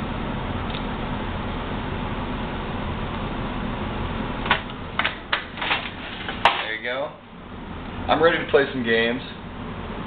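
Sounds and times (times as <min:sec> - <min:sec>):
man speaking: 0:08.1 - 0:09.4.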